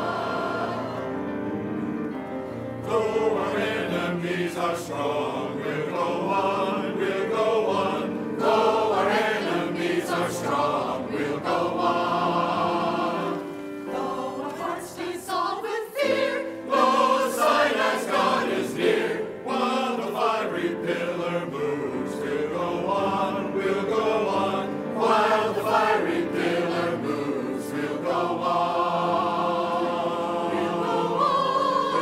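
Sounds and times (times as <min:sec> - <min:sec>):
choir singing in parts: 0:00.0 - 0:01.7, 0:02.8 - 0:32.0.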